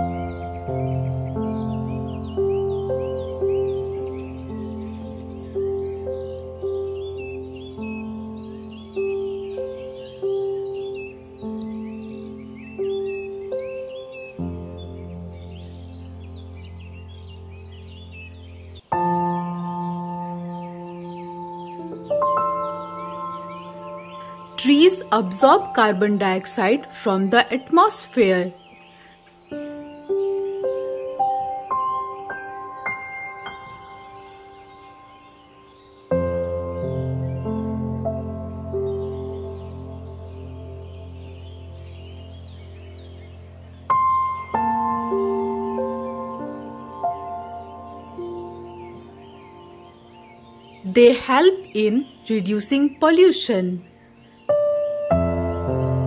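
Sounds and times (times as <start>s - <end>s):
birds chirping: 0.0s - 56.0s
soft sustained chord music: 0.0s - 56.0s.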